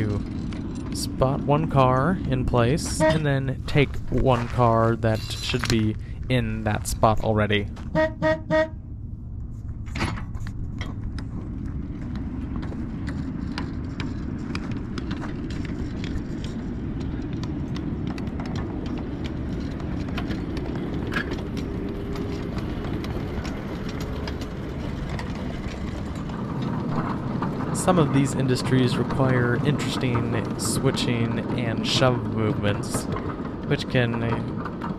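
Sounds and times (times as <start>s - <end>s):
track clicks and clacks: 0.0s - 8.7s, 9.4s - 34.9s
wheels rumbling on rail: 0.0s - 34.9s.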